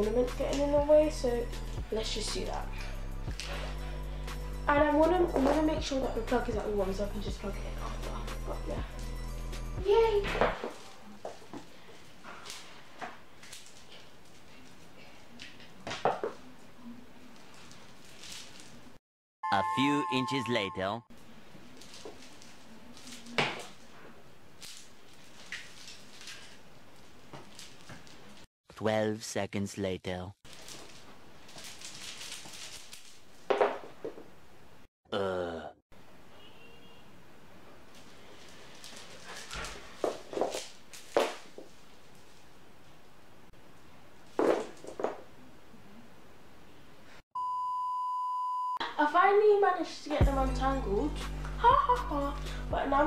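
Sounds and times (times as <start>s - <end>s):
voice: 0.0s - 2.7s, 4.7s - 8.8s, 9.8s - 10.4s, 19.5s - 21.0s, 28.7s - 30.4s, 48.8s - 53.0s
faint clicks and rustles: 10.7s - 19.0s, 21.3s - 28.5s, 30.5s - 33.5s, 37.9s - 43.0s
soft rustling: 16.4s - 19.0s, 30.5s - 34.2s
electronic beep: 19.4s - 21.0s, 47.4s - 48.8s.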